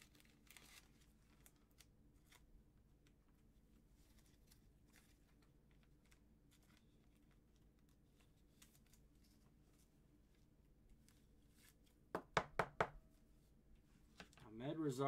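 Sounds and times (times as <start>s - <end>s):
gloved hands handling card: 0.0s - 13.3s.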